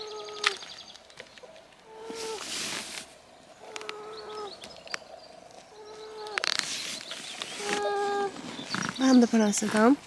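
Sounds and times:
stroller squeaking: 0:07.4 - 0:10.0.

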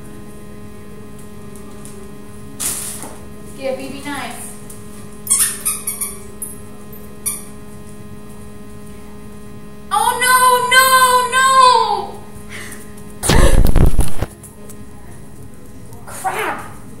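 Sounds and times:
squeaky toy squeaking: 0:05.3 - 0:06.2
loud rumble: 0:13.2 - 0:14.3.

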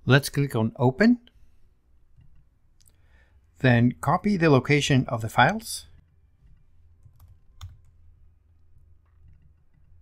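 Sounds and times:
computer mouse click: 0:06.0 - 0:08.0.

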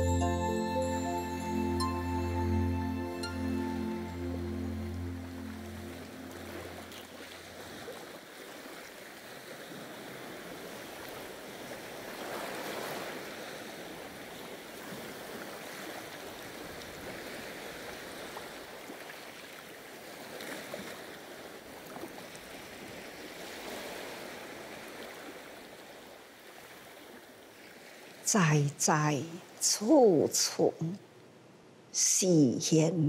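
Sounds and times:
soft music with low notes: 0:00.0 - 0:07.6
ocean waves on rocky shore: 0:00.0 - 0:29.8.

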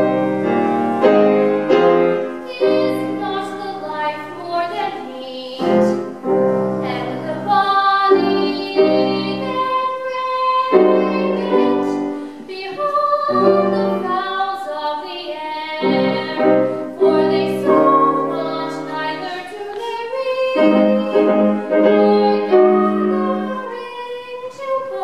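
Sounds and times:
piano chords: 0:00.0 - 0:25.0
woman singing: 0:00.0 - 0:25.0.

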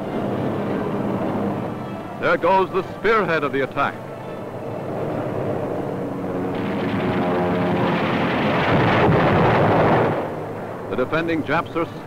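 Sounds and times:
aircraft piston engines droning: 0:00.0 - 0:12.0.

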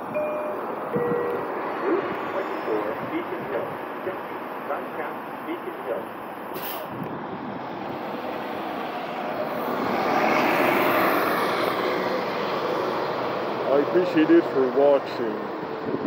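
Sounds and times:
diesel bus engine pulling away: 0:00.0 - 0:16.0
brief air hiss: 0:06.6 - 0:06.9.

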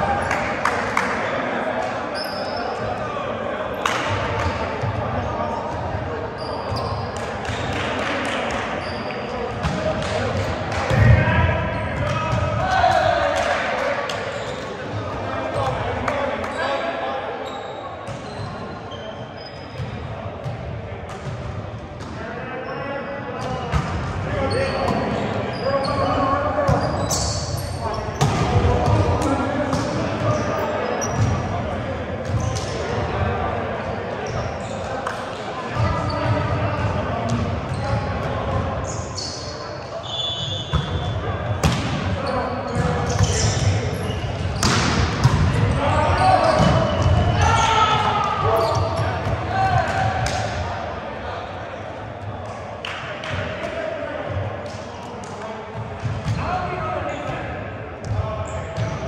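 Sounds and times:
players shouting and chatting: 0:00.0 - 0:59.0
volleyball hits and bounces: 0:09.6 - 0:11.2, 0:41.6 - 0:42.1, 0:44.5 - 0:45.6.

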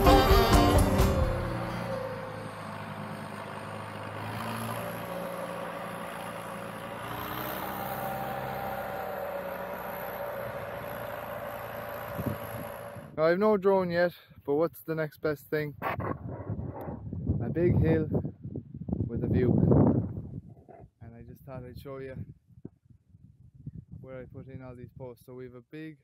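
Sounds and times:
distant tractor engine drone: 0:00.0 - 0:13.2.

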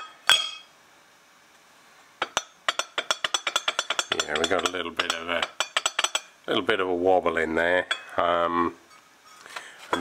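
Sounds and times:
metal casting knocking: 0:02.2 - 0:06.3.

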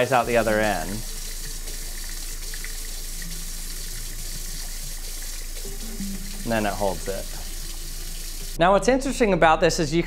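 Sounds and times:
faucet running into sink: 0:00.0 - 0:08.6.

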